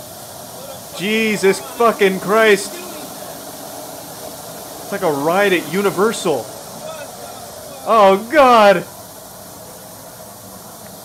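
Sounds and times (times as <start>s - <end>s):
water spraying from pipe: 0.0s - 11.0s.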